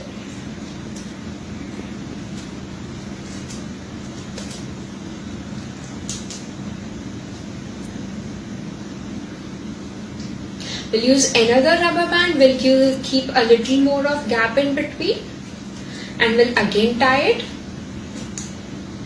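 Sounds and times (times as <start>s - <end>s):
low room hum: 0.0s - 19.0s.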